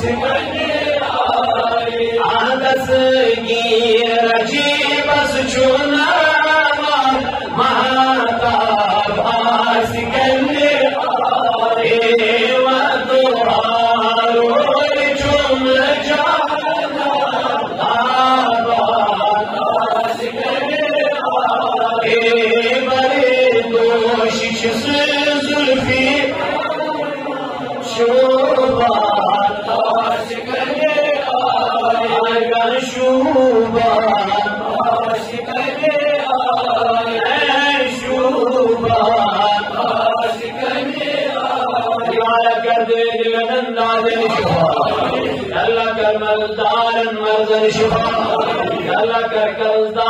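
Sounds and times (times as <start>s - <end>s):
man chanting devotional poem: 0.0s - 50.0s.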